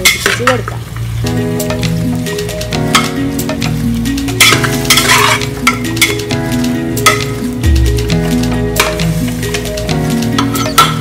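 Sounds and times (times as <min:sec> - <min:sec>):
chicken sizzling in a pot: 0:00.0 - 0:11.0
background music with bass line: 0:01.2 - 0:11.0.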